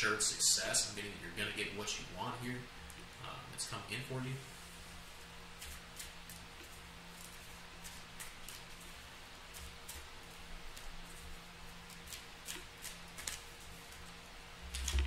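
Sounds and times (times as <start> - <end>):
faint steady hum: 0.0 - 15.0
cards being shuffled: 10.7 - 15.0.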